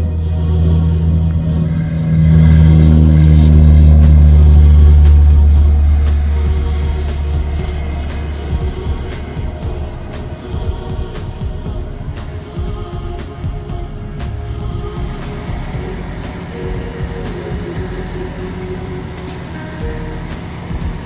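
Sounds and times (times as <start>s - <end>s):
aircraft engine drone: 0.0s - 21.0s
music: 0.0s - 21.0s.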